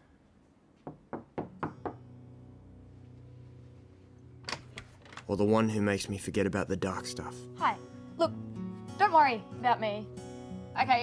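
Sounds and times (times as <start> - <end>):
knuckles knocking on wooden door: 0.8 - 2.0.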